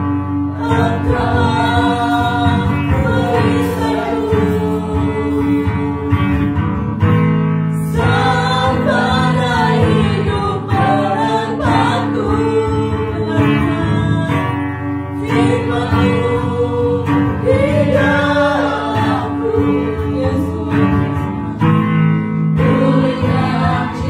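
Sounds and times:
woman and man singing: 0.0 - 6.6, 7.8 - 22.0, 22.6 - 24.0
acoustic guitar: 0.0 - 24.0.

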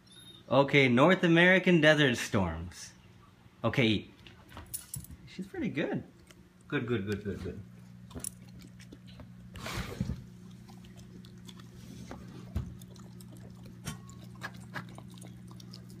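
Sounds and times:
puppy chewing and lapping: 6.1 - 16.0.

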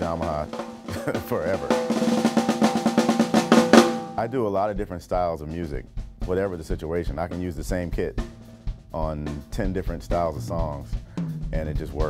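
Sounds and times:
drum kit fast strokes: 0.0 - 12.0.

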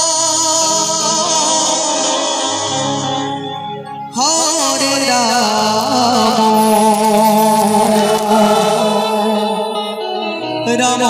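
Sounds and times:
folk band accompaniment: 0.0 - 11.0.

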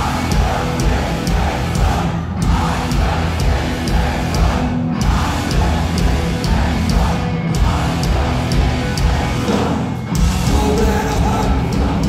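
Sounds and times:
punk band playing live: 0.0 - 12.0.

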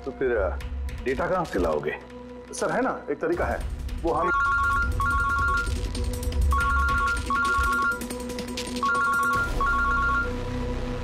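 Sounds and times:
mobile phone ringtone: 4.2 - 5.8, 6.5 - 8.1, 8.8 - 10.4.

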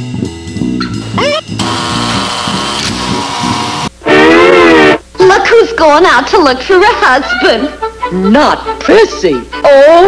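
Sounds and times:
guitar slides and strumming: 0.6 - 5.0.

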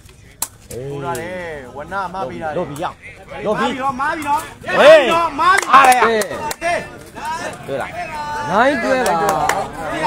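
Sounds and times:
people shouting and calling: 0.7 - 10.0.

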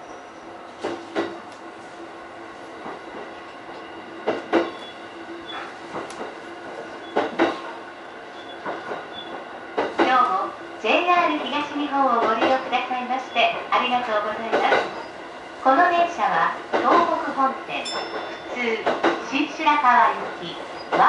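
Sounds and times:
train low hum: 0.0 - 21.0
train wheels clacking over rail joints: 0.8 - 1.6, 2.8 - 7.8, 8.4 - 10.4, 11.2 - 12.8, 13.4 - 15.1, 16.6 - 17.2, 17.8 - 19.5.

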